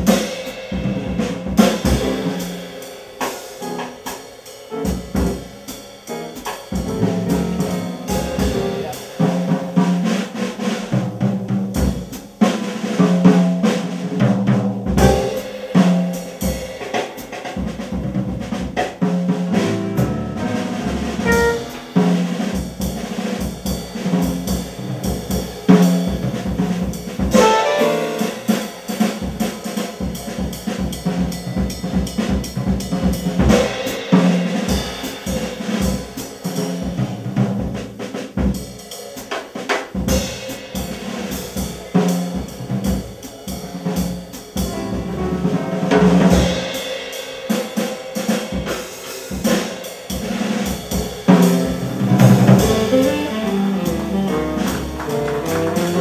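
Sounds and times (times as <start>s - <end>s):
piano: 0.0s - 38.6s, 39.9s - 56.0s
drum kit playing busily: 0.0s - 56.0s
upright bass: 6.8s - 9.0s, 19.5s - 22.0s, 44.7s - 46.5s, 51.5s - 56.0s
saxophone: 21.2s - 21.9s, 52.4s - 56.0s.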